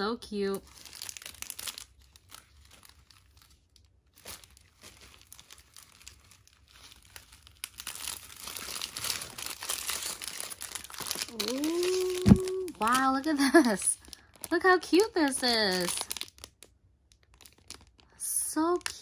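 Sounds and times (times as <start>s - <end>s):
plastic packaging crinkling: 0.0s - 19.0s.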